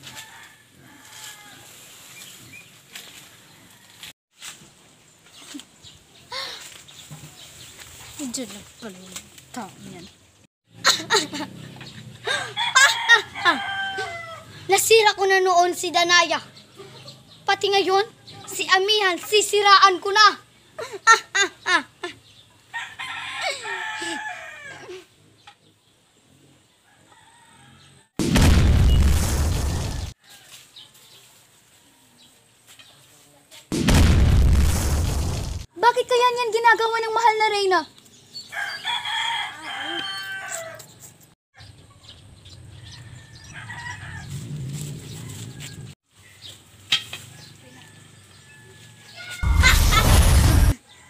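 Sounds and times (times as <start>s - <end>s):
rooster crowing: 0.0s - 1.8s, 12.3s - 14.6s, 22.7s - 24.9s, 26.8s - 28.2s, 38.5s - 40.9s, 42.7s - 46.0s, 47.6s - 49.5s
girl's villain laugh: 10.8s - 13.6s, 20.8s - 22.2s, 49.4s - 50.3s.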